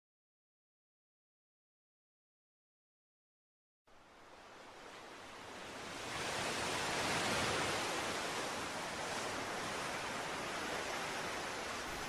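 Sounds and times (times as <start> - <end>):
rushing water: 3.9 - 12.0.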